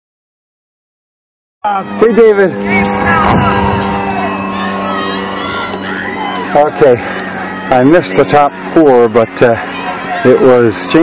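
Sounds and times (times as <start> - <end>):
steady low hum: 1.7 - 11.0
voice calling out: 2.6 - 3.8.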